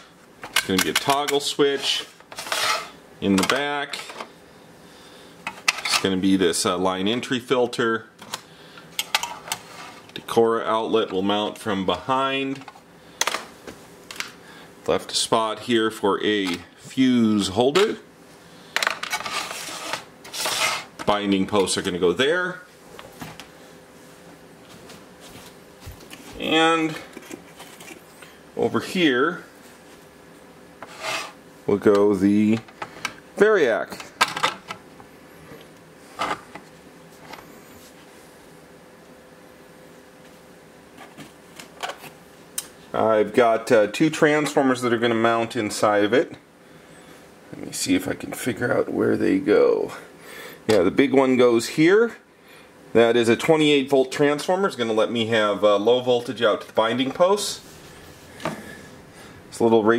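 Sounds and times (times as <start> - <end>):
faint steady hum: 0.0 - 59.9.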